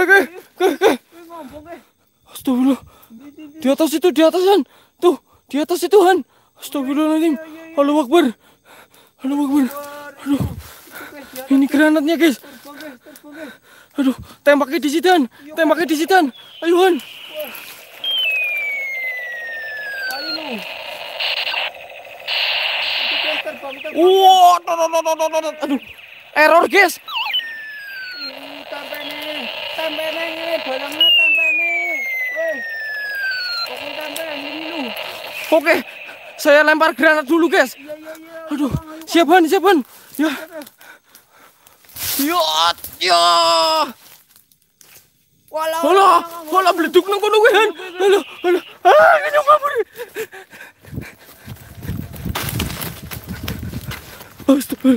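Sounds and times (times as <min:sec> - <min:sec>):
toy gun electronic sound effect: 0:15.6 - 0:38.8, 0:46.6 - 0:49.0
person crying out: 0:48.8 - 0:49.8.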